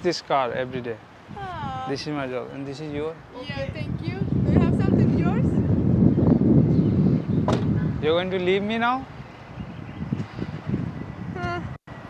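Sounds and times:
outdoor street background: 0:00.0 - 0:12.0
wind buffeting microphone: 0:00.0 - 0:12.0.

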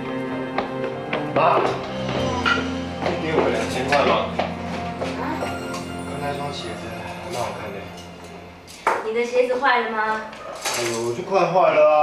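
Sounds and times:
woman speaking: 0:09.0 - 0:10.3.

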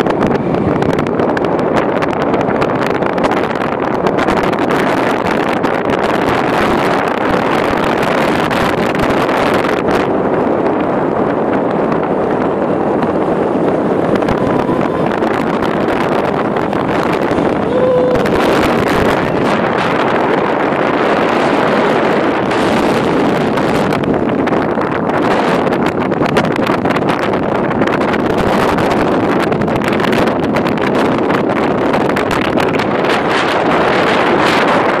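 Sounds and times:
motorcycle road noise: 0:00.0 - 0:35.0
wind rushing over microphone: 0:00.0 - 0:35.0
short steady tone: 0:13.9 - 0:16.6.

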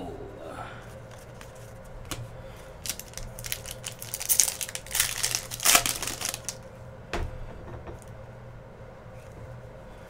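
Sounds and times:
foil wrapper tearing and crinkling: 0:02.8 - 0:06.6.

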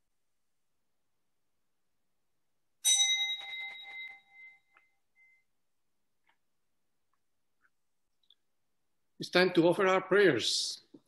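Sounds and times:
small bell ringing: 0:02.8 - 0:05.5.

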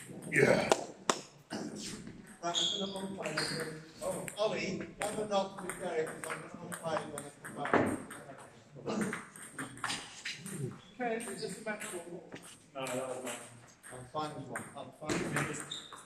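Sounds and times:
people talking: 0:00.3 - 0:00.8, 0:01.5 - 0:15.8.

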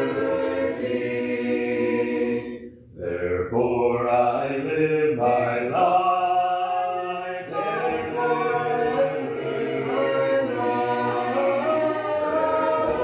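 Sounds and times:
congregation singing a hymn: 0:00.0 - 0:13.0.

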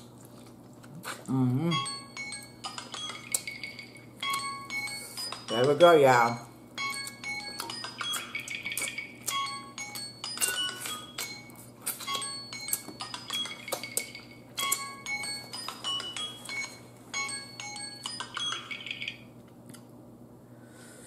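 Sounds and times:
chiming bell-like music: 0:01.7 - 0:06.0, 0:06.8 - 0:19.3.

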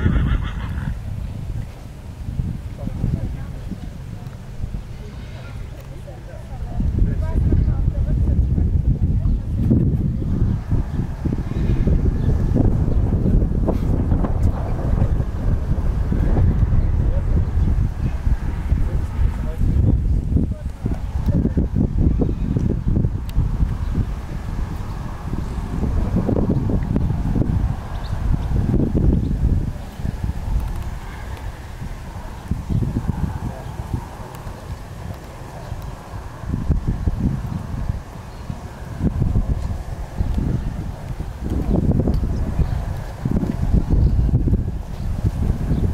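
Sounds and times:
wind buffeting microphone: 0:00.0 - 0:45.9
hooves thudding on sand: 0:02.6 - 0:45.9.

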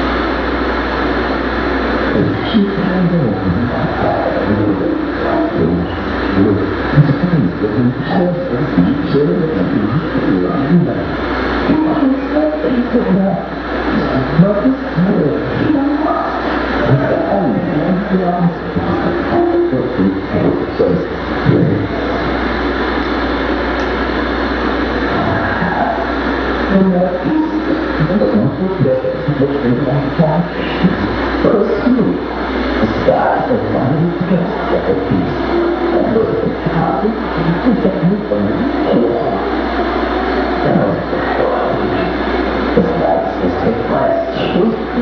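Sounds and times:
rumbling electronic noise drone: 0:00.0 - 0:45.0
voice fragments: 0:01.1 - 0:45.0.

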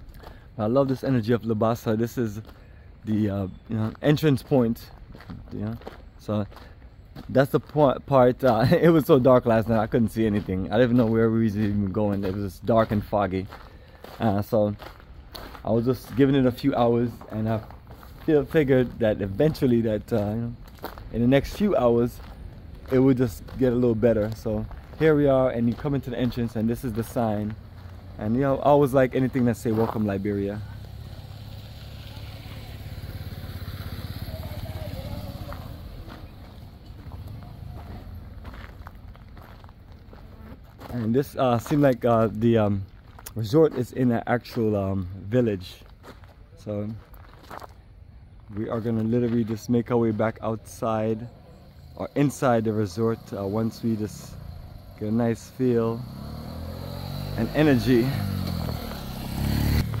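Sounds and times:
motorcycle engine running: 0:25.6 - 0:38.4, 0:51.3 - 1:00.0
faint distant voice: 0:34.3 - 0:36.3.

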